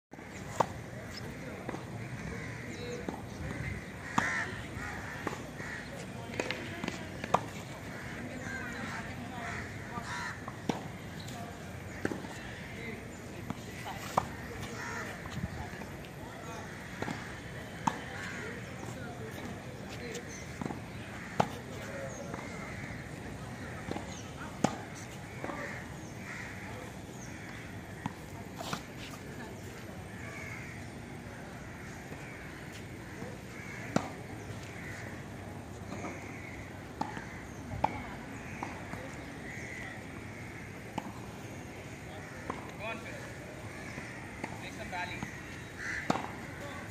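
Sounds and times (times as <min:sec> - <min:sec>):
outdoor background noise: 0:00.1 - 0:46.9
tennis balls knocking on hard court: 0:06.3 - 0:07.6, 0:46.0 - 0:46.9
tennis ball hit: 0:46.0 - 0:46.9.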